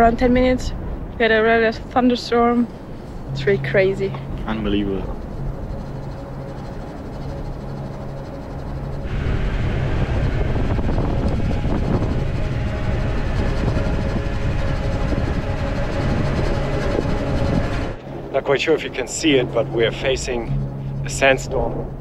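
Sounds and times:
engine and road noise in cabin: 0.0 - 22.0
low hum: 0.0 - 22.0.

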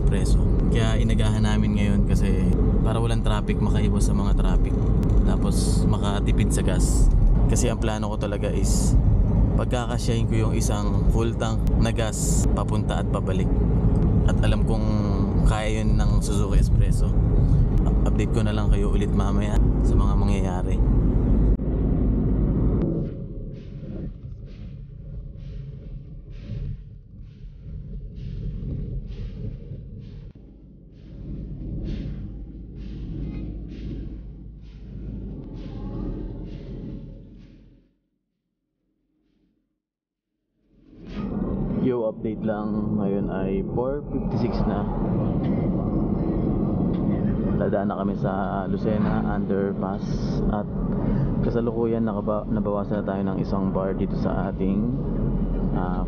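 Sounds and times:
road noise: 0.0 - 26.5
car engine cabin drone: 0.0 - 37.7, 41.0 - 56.0.

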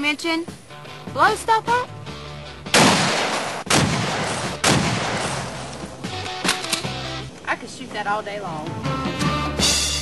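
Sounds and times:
music: 0.0 - 10.0
loud bangs with long echo: 2.7 - 5.7.

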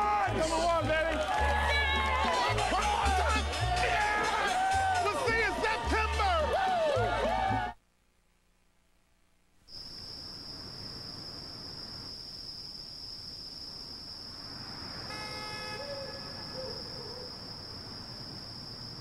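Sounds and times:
insect trill: 9.7 - 19.0
car horn toot: 15.1 - 16.6.

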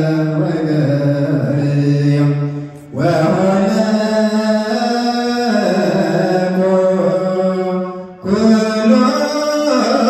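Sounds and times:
liturgical chant: 0.0 - 10.0.

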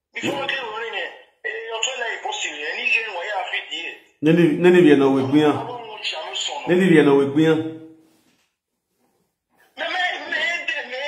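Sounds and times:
man speaking: 0.2 - 7.9, 9.8 - 11.0.

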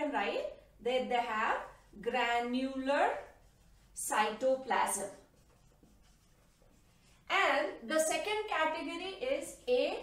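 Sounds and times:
marker scratching on whiteboard: 0.4 - 10.0.

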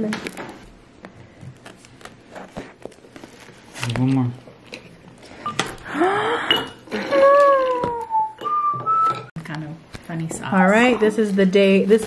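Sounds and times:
plastic crinkling: 1.5 - 5.0.

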